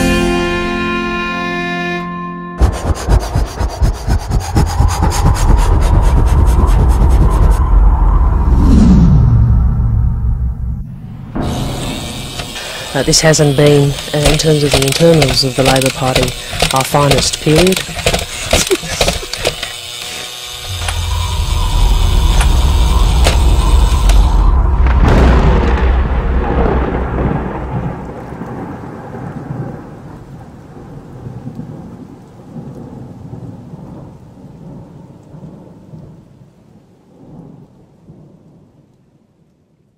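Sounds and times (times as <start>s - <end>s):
thunder rumbling and cracking: 2.6s - 19.5s, 20.6s - 39.5s
rain-like hiss: 11.4s - 39.9s.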